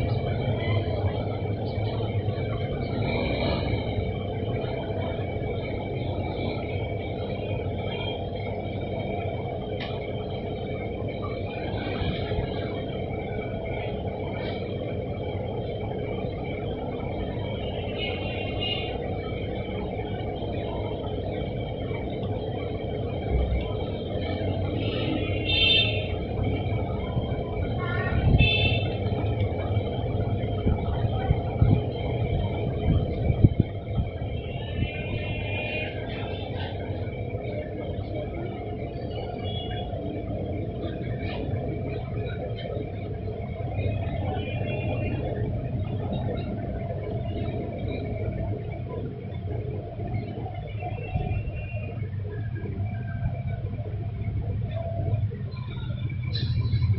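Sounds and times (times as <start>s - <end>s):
low rumble and hum: 0.0s - 56.9s.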